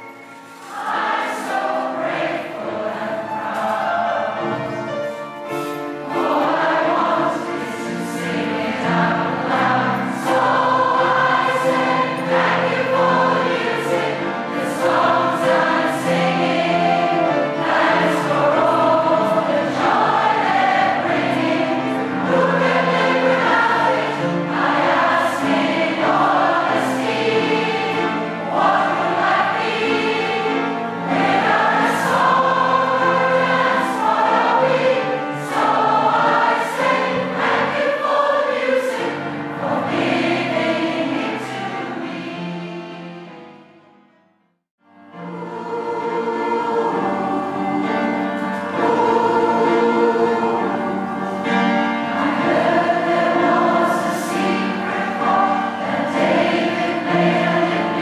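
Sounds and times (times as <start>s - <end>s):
choir singing: 0.0s - 43.9s, 44.9s - 58.0s.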